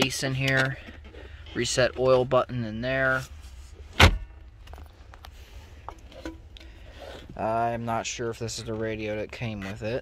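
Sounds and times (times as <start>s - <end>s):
handling clicks and rubs: 0.0s - 2.4s, 8.4s - 10.0s.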